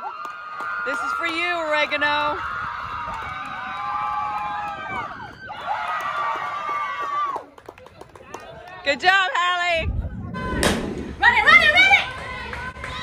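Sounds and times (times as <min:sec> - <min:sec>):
young women cheering and yelling: 0:00.0 - 0:07.5, 0:08.8 - 0:13.0.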